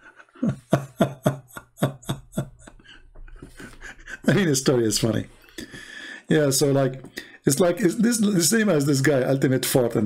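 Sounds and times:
man laughing: 0.0 - 5.0.

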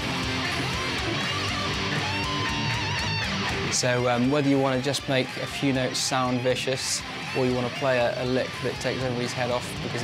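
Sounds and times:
electric guitar lead: 0.0 - 10.0.

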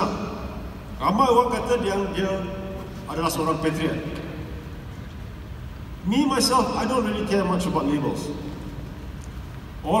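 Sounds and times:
faint hiss: 0.0 - 10.0
low room rumble: 0.0 - 10.0.

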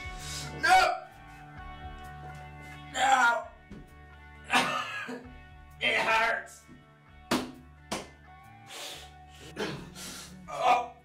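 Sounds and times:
background music: 0.0 - 11.0
man grunting: 9.5 - 11.0.

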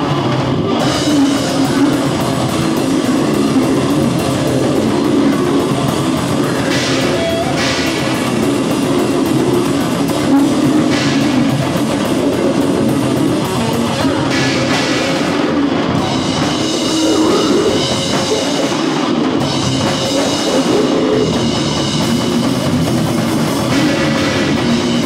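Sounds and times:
metal band playing live: 0.0 - 25.0.

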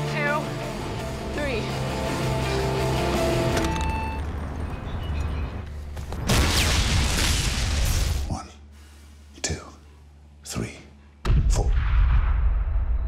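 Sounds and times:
grenade explosion with rumbling debris: 6.2 - 8.2, 11.3 - 13.0.

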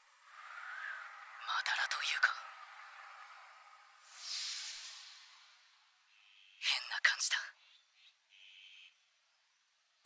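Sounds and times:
thin whispery filtered speech: 1.4 - 2.5, 6.6 - 7.6.

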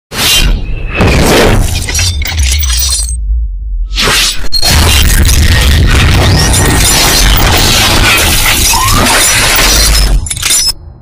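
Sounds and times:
deep bass rumble: 3.2 - 4.0
shattering crash: 4.6 - 10.7.

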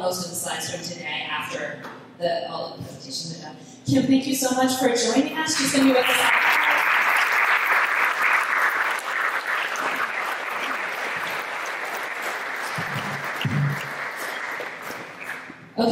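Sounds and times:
audience applauding: 5.6 - 15.6.

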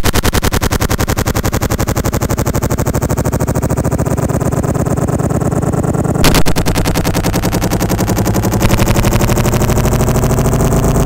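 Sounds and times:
pulsing electronic drone: 0.0 - 11.0.

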